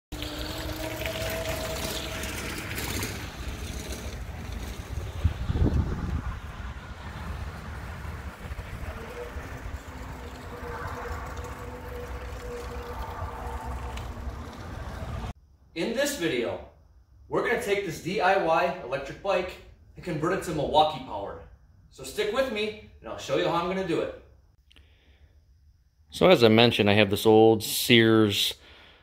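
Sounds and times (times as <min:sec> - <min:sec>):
electric motor whine: 0:00.2 - 0:15.1
wind rumbling on microphone: 0:00.3 - 0:15.4.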